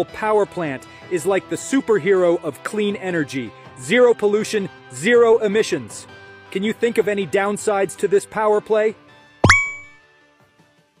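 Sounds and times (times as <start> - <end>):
faint background music: 0.0 - 9.2
bright ding chime: 9.4 - 10.0.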